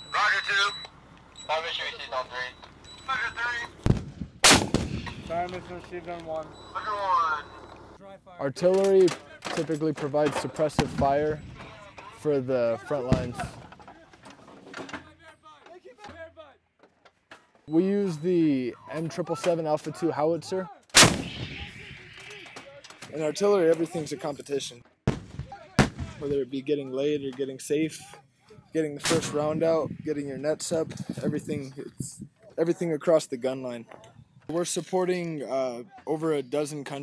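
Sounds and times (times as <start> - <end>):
howitzer firing blast: 3.8 - 5.9, 21.0 - 23.3, 25.1 - 26.3.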